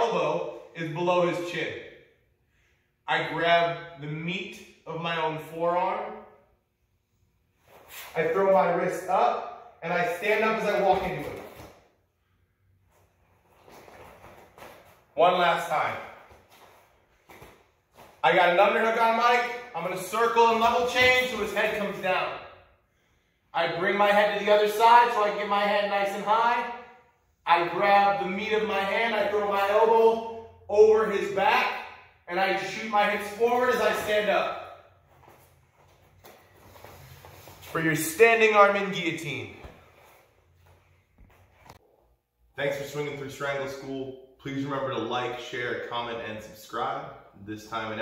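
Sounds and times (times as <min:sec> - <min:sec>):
shuffling feet: 0:15.9 - 0:18.4, 0:35.0 - 0:38.1.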